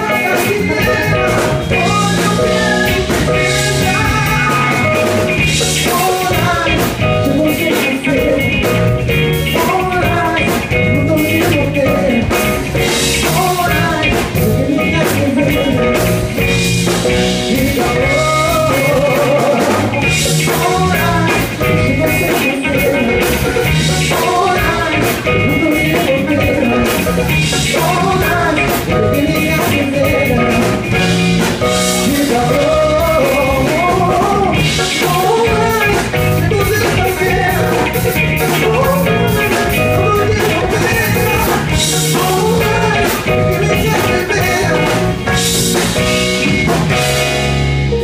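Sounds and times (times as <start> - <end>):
man singing: 0.0 - 46.1
drum kit: 0.0 - 48.0
electric guitar: 0.0 - 48.0.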